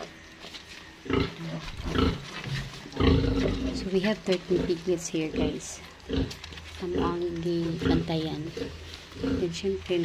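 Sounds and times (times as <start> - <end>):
pigs grunting: 1.0 - 10.0.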